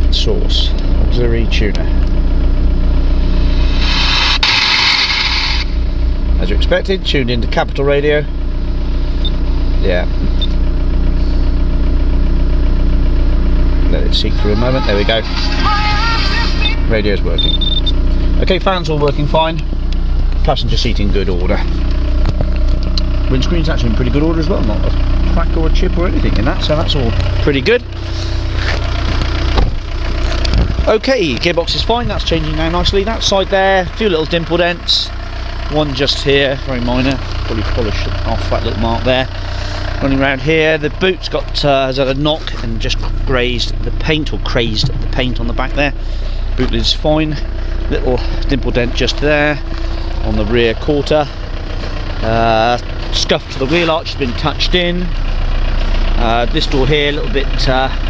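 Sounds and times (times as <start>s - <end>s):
diesel engine idling: 0.0s - 58.0s.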